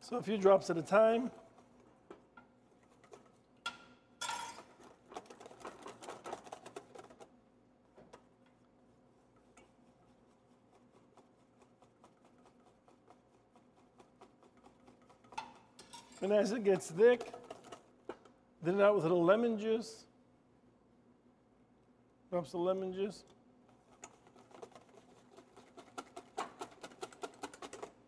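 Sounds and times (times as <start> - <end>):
whisk clicking in metal bowl: 2.4 - 7.3, 9.4 - 18.3, 23.8 - 28.0.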